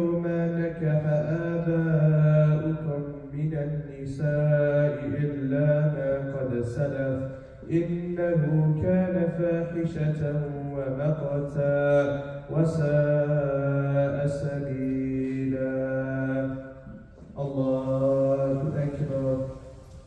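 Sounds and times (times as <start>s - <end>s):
man chanting melodically: 0.0s - 19.8s.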